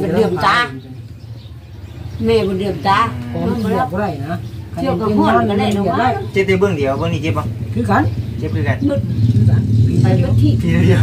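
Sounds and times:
engine droning: 0.0 - 11.0
man speaking: 10.6 - 11.0.

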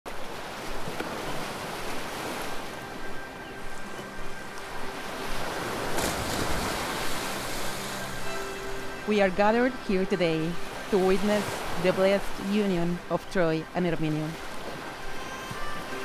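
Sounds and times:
soft faint music: 0.4 - 16.0
surf crashing over rocks: 5.3 - 8.0.

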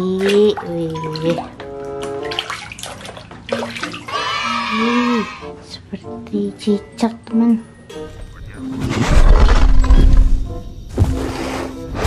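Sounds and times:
water sloshing in a basin: 0.0 - 4.9.

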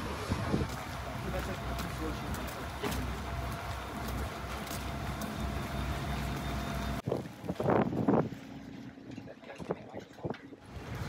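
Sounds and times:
construction machinery engines humming: 0.0 - 7.0
wind: 0.0 - 11.0.

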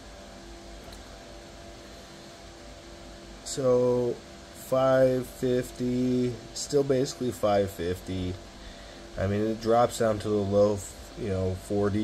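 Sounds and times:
cooling fans whirring: 0.0 - 12.0
faint low hum: 0.0 - 12.0.

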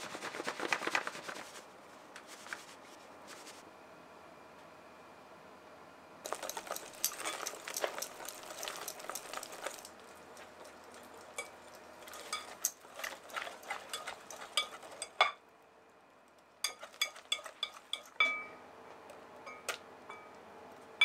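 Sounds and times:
whisk scraping glass bowl: 6.3 - 15.3, 16.6 - 18.2.

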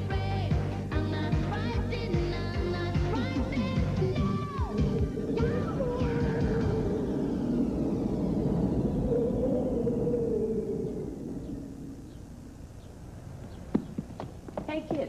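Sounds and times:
footsteps on hard floor: 13.5 - 15.0.

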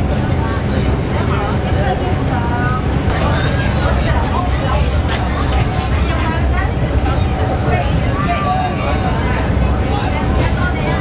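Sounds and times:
ferry engines and water rumbling: 0.0 - 11.0
people's voices: 0.0 - 11.0.

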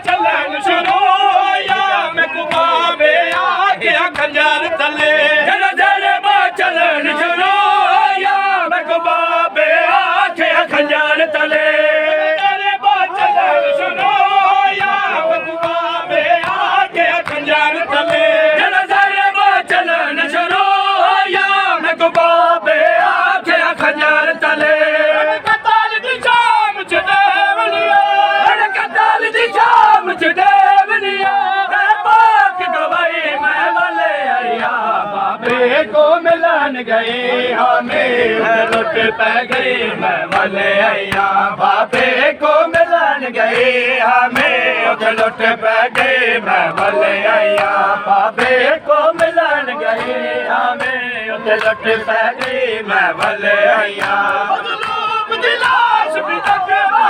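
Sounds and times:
hands slapping chests: 0.0 - 4.4, 14.0 - 19.0, 37.8 - 56.7
men chanting together: 0.0 - 57.0.

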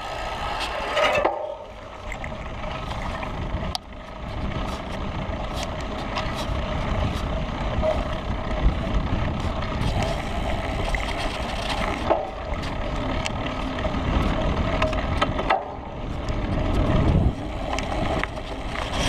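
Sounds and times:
bike tyres rolling: 0.0 - 19.0
wind buffeting microphone: 1.5 - 19.0
light ticks from bike: 2.0 - 19.0.

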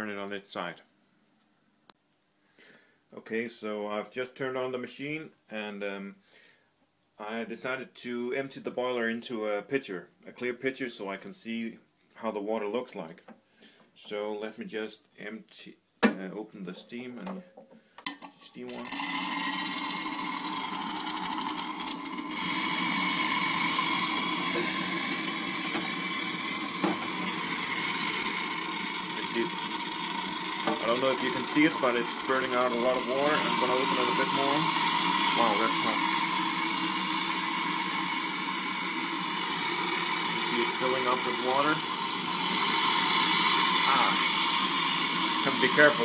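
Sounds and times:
machine hum: 18.8 - 46.0
steam wand hissing: 18.9 - 46.0.

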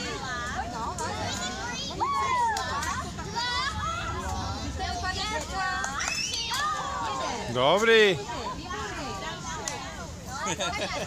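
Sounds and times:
children shouting: 1.1 - 4.6, 5.8 - 7.5.

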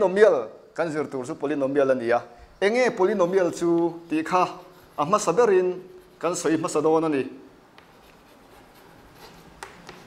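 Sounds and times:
chalk scratching on blackboard: 2.9 - 6.9, 7.8 - 10.0
sharp chalk taps: 3.3 - 5.0, 7.7 - 10.0.

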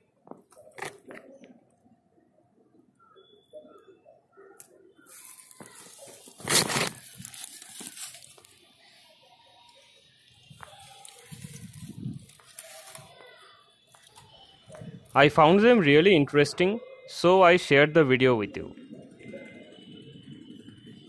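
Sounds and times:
plastic sack rustling: 5.1 - 8.7, 10.6 - 13.2.

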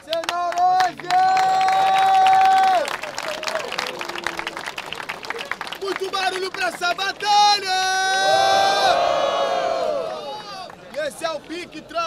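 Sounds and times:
crowd applauding: 0.0 - 12.0
long held shout: 1.0 - 3.7, 7.2 - 10.7.

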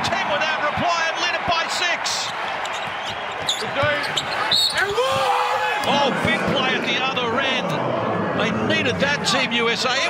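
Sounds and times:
sneakers squeaking on hardwood: 2.6 - 5.2.

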